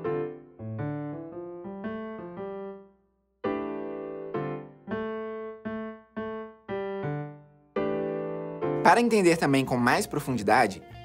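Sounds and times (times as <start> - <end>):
digital piano jazz chords: 0.0 - 11.0.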